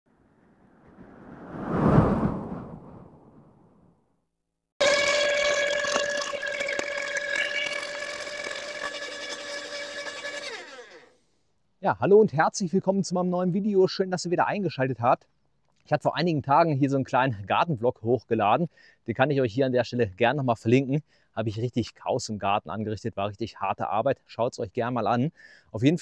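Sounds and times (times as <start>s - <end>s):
whoosh: 0.1s - 4.0s
garden shredder whine: 4.8s - 11.2s.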